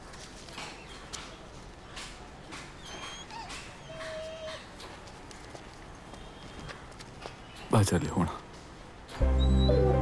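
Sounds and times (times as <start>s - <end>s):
dog whimpering: 2.8s - 4.8s.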